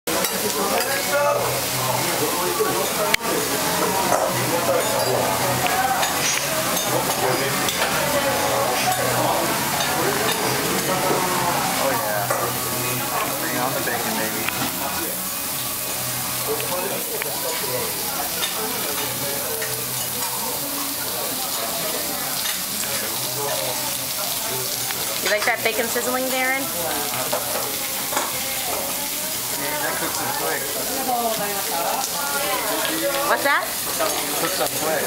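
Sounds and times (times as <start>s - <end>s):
food sizzling on hot griddle: 0.1s - 35.0s.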